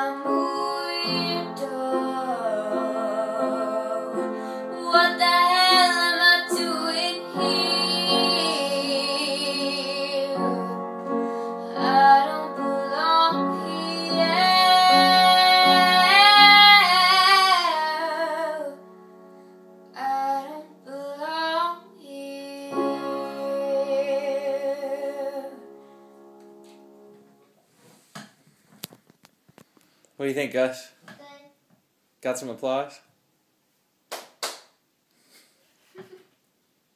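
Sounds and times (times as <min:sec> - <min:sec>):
woman singing: 0:00.0 - 0:10.9, 0:11.6 - 0:18.8, 0:20.0 - 0:25.6.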